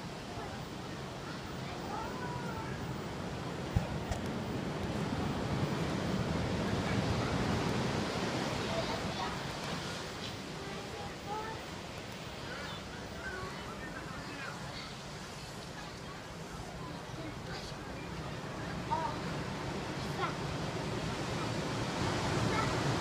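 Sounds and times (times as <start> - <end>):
ocean surf on a beach: 0.0 - 23.0
wind on microphone: 2.6 - 10.2.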